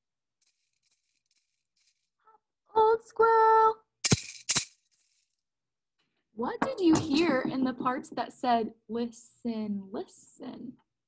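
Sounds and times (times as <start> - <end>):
maraca rattles: 4.0 - 5.2.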